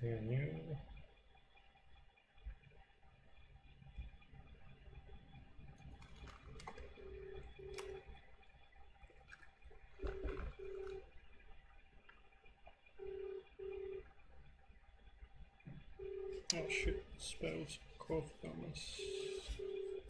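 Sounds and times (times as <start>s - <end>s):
telephone ringback tone: 10.0s - 11.0s, 13.0s - 14.1s, 16.0s - 17.0s, 18.9s - 20.0s.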